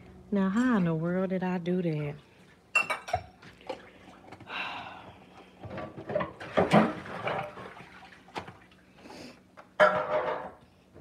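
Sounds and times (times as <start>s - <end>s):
kitchenware clattering: 2.7s - 3.4s, 5.6s - 7.8s, 9.8s - 10.6s.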